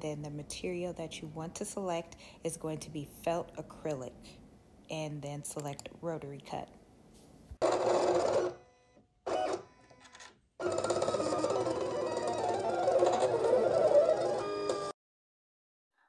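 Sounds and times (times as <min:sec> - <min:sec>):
cutting machine motors whining: 0:10.6 - 0:14.9.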